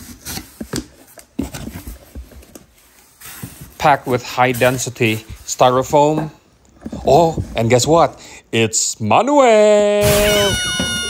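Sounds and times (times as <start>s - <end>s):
rubbing of cardboard and styrofoam: 0.0s - 5.8s.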